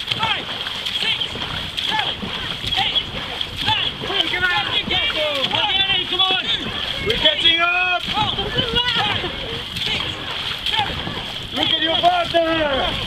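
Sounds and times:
paddles splashing through water: 0.0s - 13.0s.

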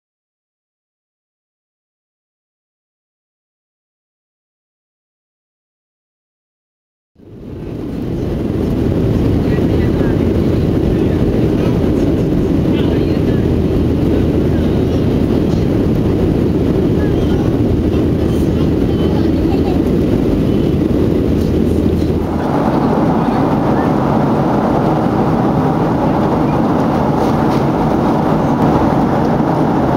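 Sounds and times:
airplane cabin engine roar: 7.2s - 29.9s.

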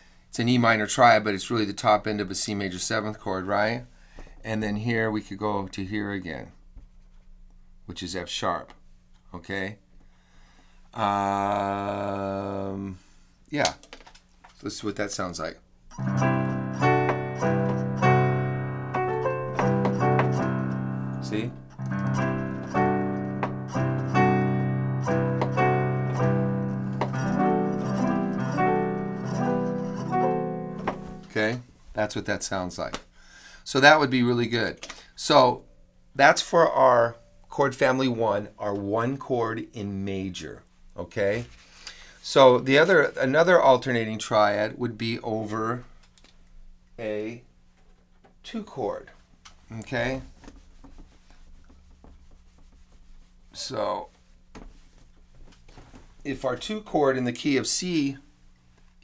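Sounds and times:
piano chords: 15.9s - 31.3s
eraser rubbing whiteboard: 50.1s - 55.0s.

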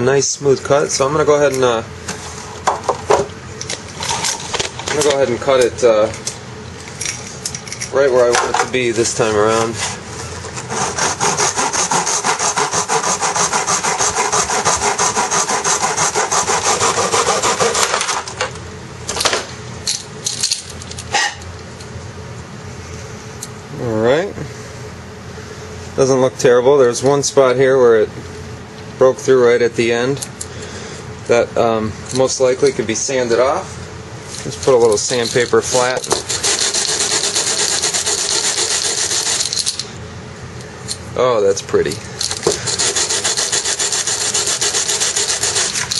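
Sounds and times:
rasping on sandpaper: 10.6s - 17.9s, 35.1s - 39.8s, 42.6s - 45.9s
hand saw cutting tube: 10.6s - 18.3s, 35.1s - 39.8s, 42.4s - 45.9s.

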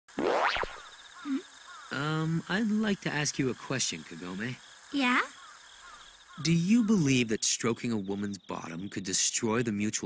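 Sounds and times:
cartoon rising pitch glide: 0.1s - 2.3s.

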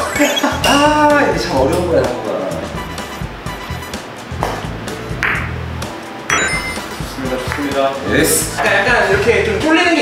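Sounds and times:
background music: 0.0s - 10.0s
cue tip striking ball: 4.4s - 5.6s
billiard balls clicking: 5.2s - 5.6s.

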